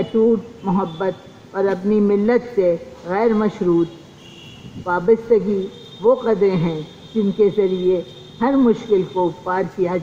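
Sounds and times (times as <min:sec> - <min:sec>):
woman speaking into microphone: 0:00.0 - 0:03.9, 0:04.8 - 0:10.0.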